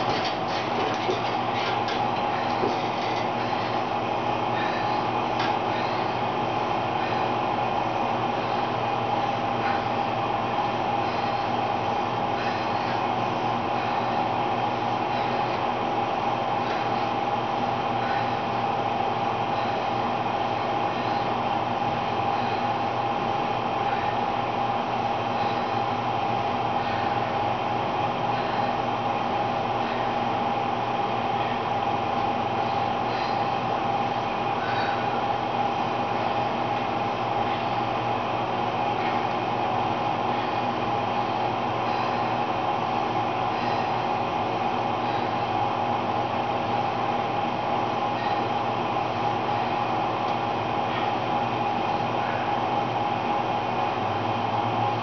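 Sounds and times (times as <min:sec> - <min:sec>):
elliptical trainer whirring hum: 0:00.0 - 0:55.0.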